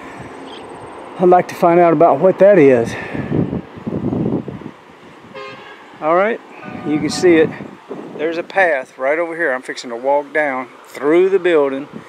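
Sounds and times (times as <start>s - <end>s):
wind buffeting microphone: 0.0s - 8.9s, 11.8s - 12.0s.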